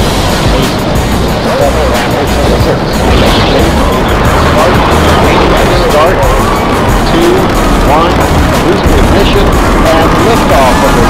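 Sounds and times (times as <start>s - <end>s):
background music: 0.0s - 11.0s
rocket engines rumbling: 0.0s - 11.0s
commentator speaking: 1.3s - 11.0s.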